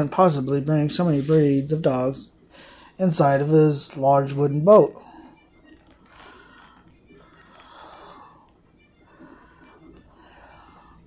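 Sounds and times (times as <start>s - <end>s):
man breathing: 2.5s - 3.0s, 6.0s - 11.0s.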